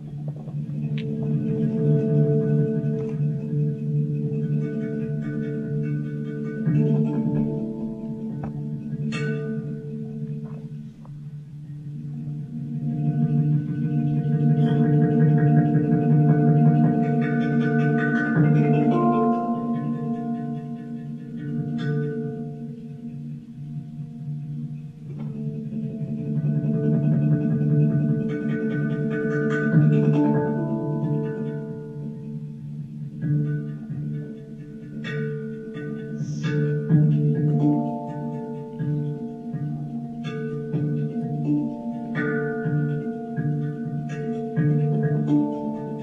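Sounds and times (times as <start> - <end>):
handpan ringing notes: 0.0 - 46.0.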